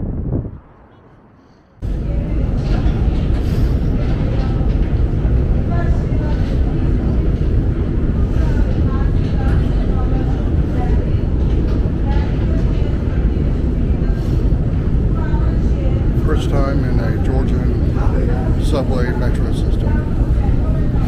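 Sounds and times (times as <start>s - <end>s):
escalator rumbling: 0.0s - 21.0s
faint voices: 1.8s - 21.0s.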